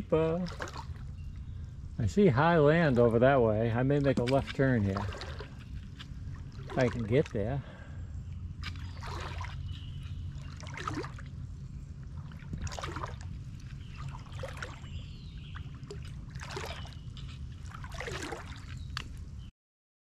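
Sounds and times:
wading through deep water: 0.0s - 19.4s.

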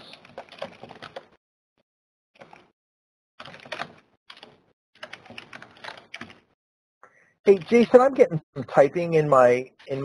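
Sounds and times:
computer keyboard typing: 0.0s - 1.4s, 2.4s - 2.7s, 3.4s - 6.6s.

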